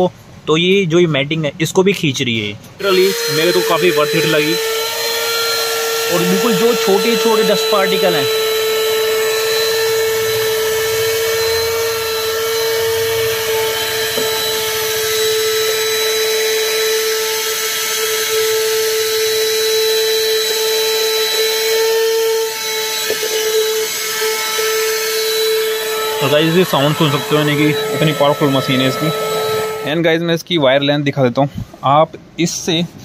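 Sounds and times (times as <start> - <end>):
handheld vacuum motor whine: 2.8 - 30.0.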